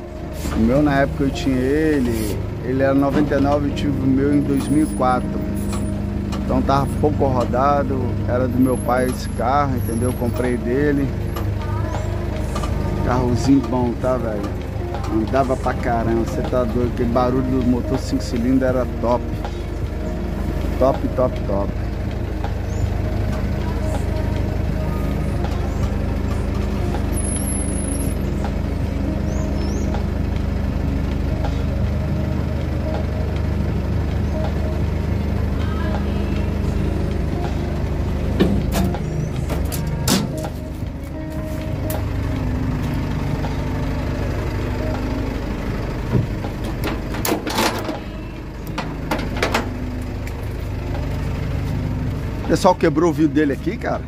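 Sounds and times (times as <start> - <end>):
truck engine running: 0.0 - 54.0
knocks and clanks: 38.2 - 40.9, 46.0 - 51.0.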